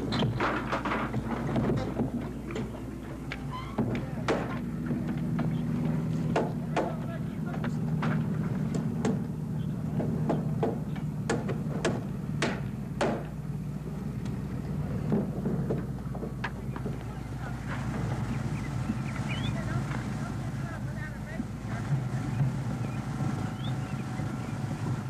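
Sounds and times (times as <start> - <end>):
steady low hum: 0.0 - 25.0
hammers striking nails and wood: 3.3 - 5.6, 6.3 - 9.3, 9.9 - 13.4.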